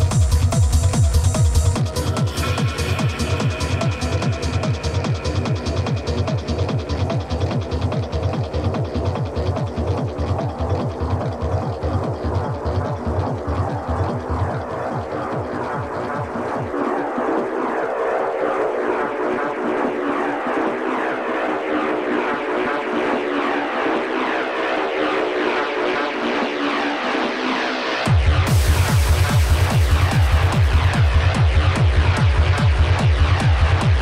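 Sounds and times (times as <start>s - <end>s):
pounding kick drum: 0.0s - 16.8s, 28.1s - 34.0s
droning rhythmic layer: 0.0s - 34.0s
industrial techno music: 0.0s - 34.0s.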